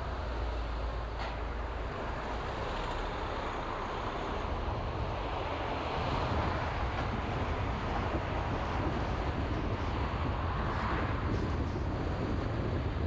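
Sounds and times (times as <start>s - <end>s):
road and engine rumble: 0.0s - 13.0s.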